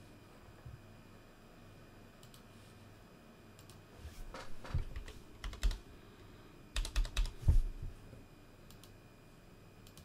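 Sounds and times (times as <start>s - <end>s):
typing on computer keyboard: 4.8s - 5.8s, 6.8s - 7.3s.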